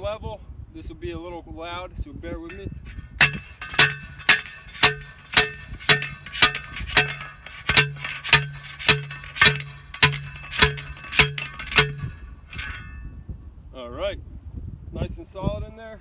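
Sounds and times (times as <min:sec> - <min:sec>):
post pounder clanking on metal post: 0:02.5 - 0:13.0.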